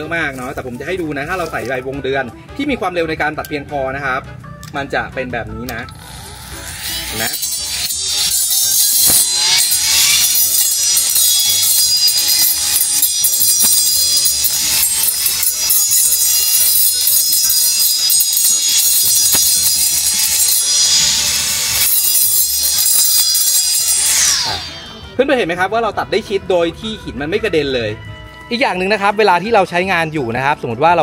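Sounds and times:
background music: 0.0 - 31.0
blade cutting short grass: 0.3 - 1.8
brush cutter motor whining: 5.7 - 25.2.

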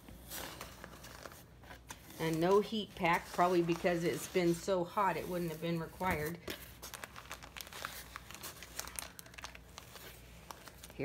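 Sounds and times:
paper packing crinkling: 0.0 - 11.0.

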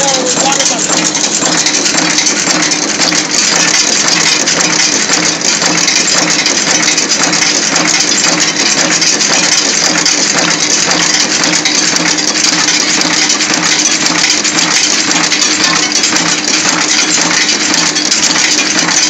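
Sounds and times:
machine metallic clatter: 0.0 - 19.0.

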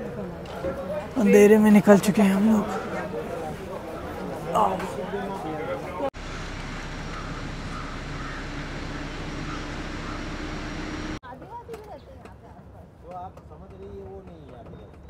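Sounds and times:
jeep engine and road noise: 5.4 - 11.2.

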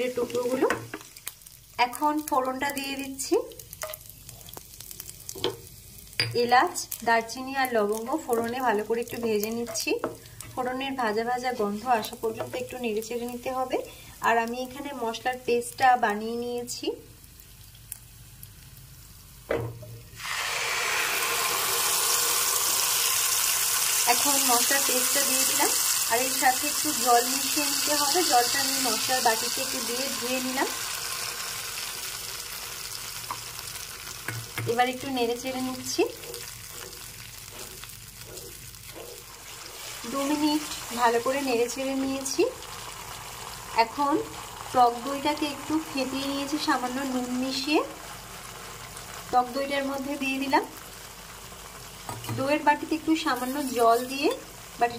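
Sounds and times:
spices sizzling in hot oil: 0.0 - 54.9
spatula stirring: 33.3 - 42.0.

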